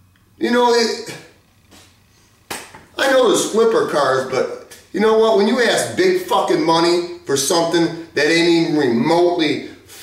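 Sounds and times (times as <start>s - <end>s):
hand clap: 2.5s - 2.9s
person speaking: 2.9s - 10.0s.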